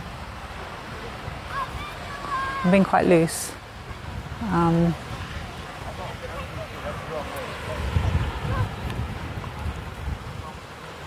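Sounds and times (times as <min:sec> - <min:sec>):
surf hissing: 0:00.0 - 0:11.0
wind rumbling on microphone: 0:00.0 - 0:11.0.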